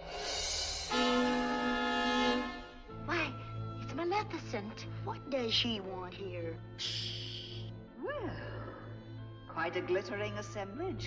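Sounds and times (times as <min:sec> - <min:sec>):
orchestra chord: 0:00.3 - 0:03.3.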